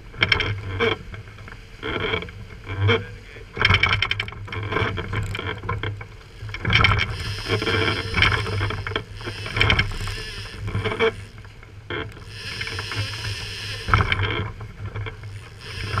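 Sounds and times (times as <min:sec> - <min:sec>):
outboard motors humming: 0:00.0 - 0:16.0
water rushing along hull: 0:00.0 - 0:16.0.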